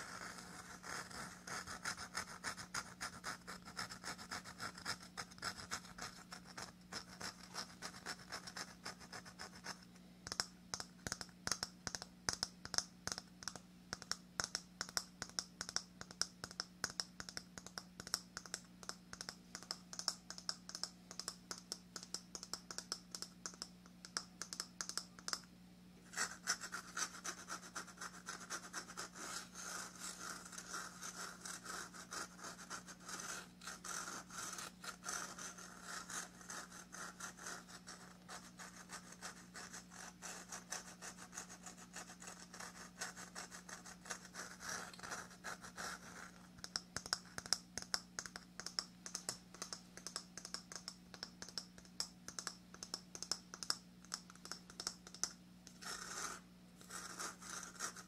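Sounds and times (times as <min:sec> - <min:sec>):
faint steady hum: 0:00.0 - 0:58.0
fingernails tapping on coconut: 0:10.2 - 0:25.4, 0:46.6 - 0:55.3.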